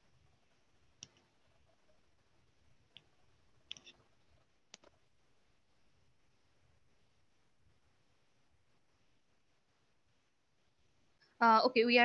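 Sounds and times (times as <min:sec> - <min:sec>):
faint sharp clicks: 0:03.7 - 0:04.0, 0:04.7 - 0:05.0.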